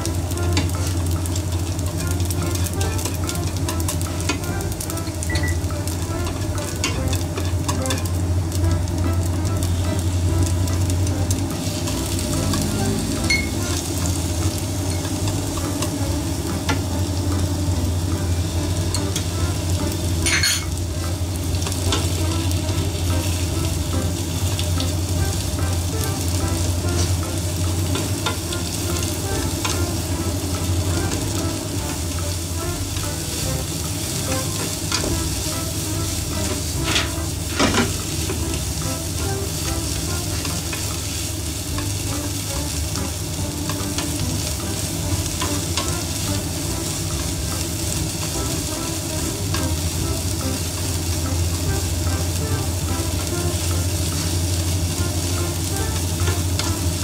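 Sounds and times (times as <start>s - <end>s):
vegetables sizzling in a frying pan: 0.0s - 57.0s.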